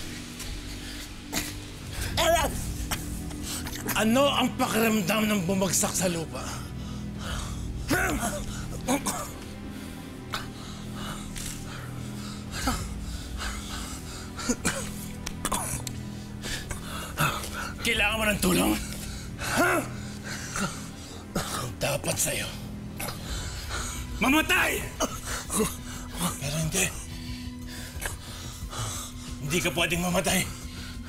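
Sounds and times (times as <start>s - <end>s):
background music drone: 0.0s - 31.0s.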